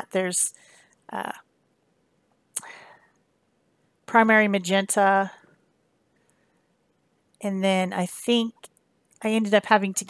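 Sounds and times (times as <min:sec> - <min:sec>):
intake of breath: 0:00.6 - 0:01.0
woman saying uh: 0:01.1 - 0:01.4, 0:07.4 - 0:10.0.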